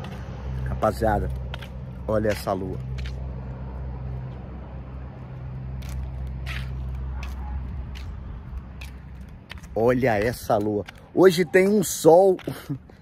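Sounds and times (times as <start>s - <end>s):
low hum and rumble: 0.0s - 10.4s.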